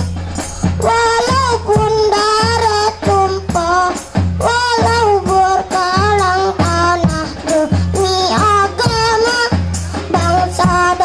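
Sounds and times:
deep bass drum beats: 0.0s - 11.0s
frame drums: 0.0s - 11.0s
jingling tambourines: 0.0s - 11.0s
child singing into microphone: 0.7s - 11.0s.

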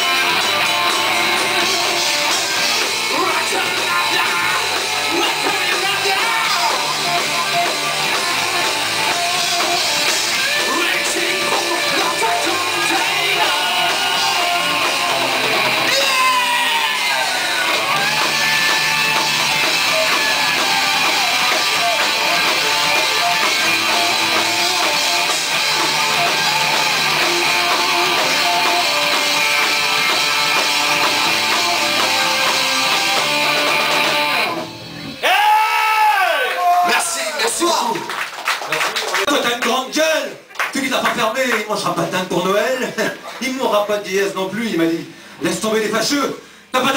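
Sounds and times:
rock band playing: 0.0s - 36.1s
loud voice: 3.1s - 7.7s, 35.2s - 38.1s.

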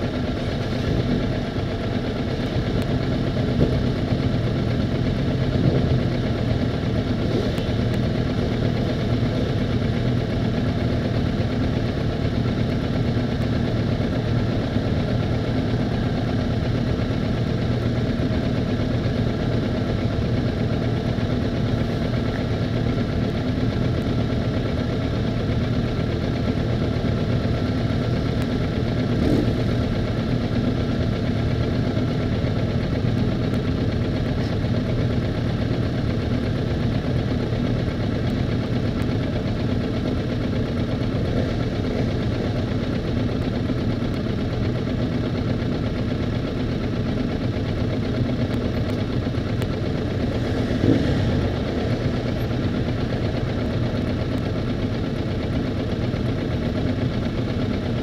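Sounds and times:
motorcycle engines idling: 0.0s - 58.0s.

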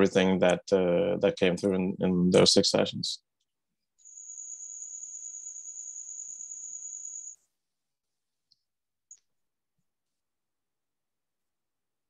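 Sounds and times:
cricket trilling: 4.0s - 7.4s.

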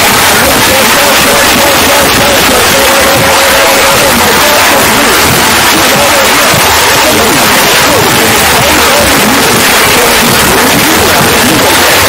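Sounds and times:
heavily distorted noise: 0.0s - 12.0s.

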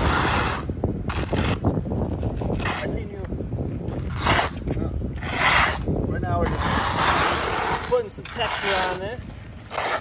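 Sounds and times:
trowel scraping wet concrete: 0.0s - 3.2s, 4.0s - 10.0s.

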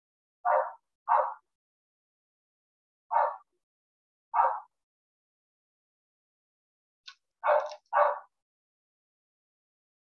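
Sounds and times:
dog barking: 0.4s - 1.5s, 3.1s - 3.5s, 4.3s - 4.8s, 7.4s - 8.4s.

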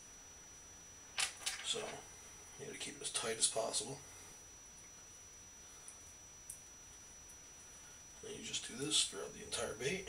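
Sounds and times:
man speaking: 1.7s - 2.0s, 2.6s - 4.0s, 8.2s - 10.0s.

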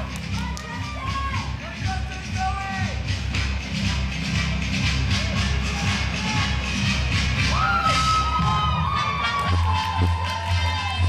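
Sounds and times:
spectators cheering and calling out: 0.0s - 3.1s, 5.0s - 11.0s
paso doble dance music: 0.0s - 11.0s.

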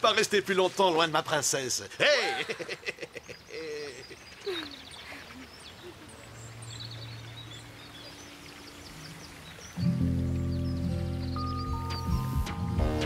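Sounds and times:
faint bird chirps: 3.1s - 12.7s
music with sustained low chords: 6.4s - 13.0s.

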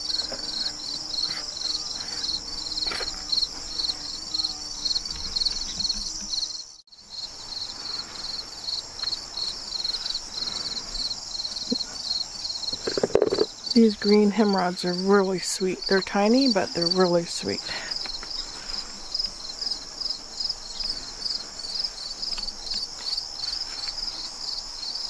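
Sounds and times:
crickets chirping: 0.0s - 25.0s
insects trilling: 0.0s - 25.0s.

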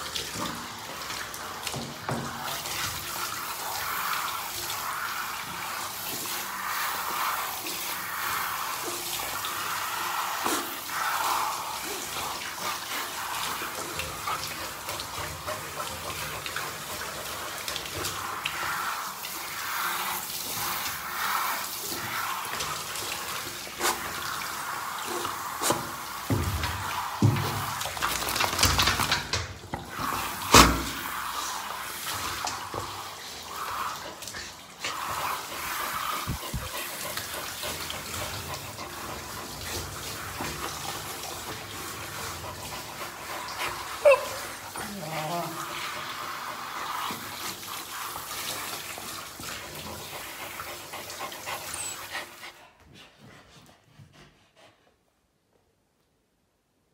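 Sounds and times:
shower water spraying on dog: 0.0s - 52.6s.

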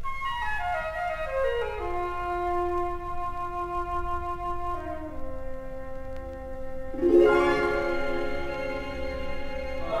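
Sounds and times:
orchestral music: 1.8s - 10.0s.

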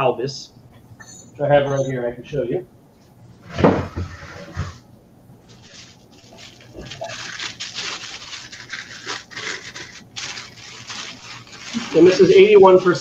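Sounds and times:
paper wrapping rustling: 5.4s - 13.0s.

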